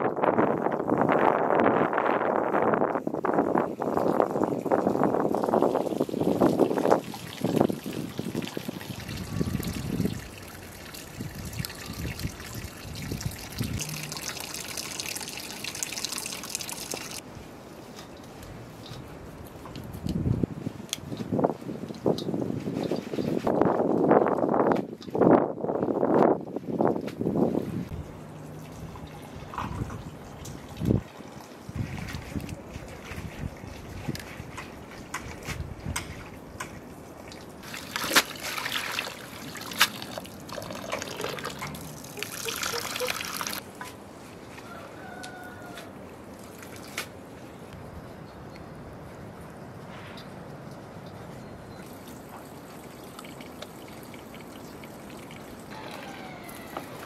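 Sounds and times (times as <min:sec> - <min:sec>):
water sloshing in metal bowl: 0:37.2 - 0:43.6.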